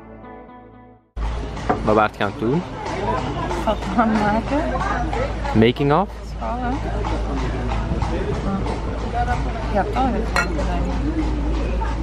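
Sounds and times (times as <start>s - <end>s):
people talking in background: 1.2s - 12.0s.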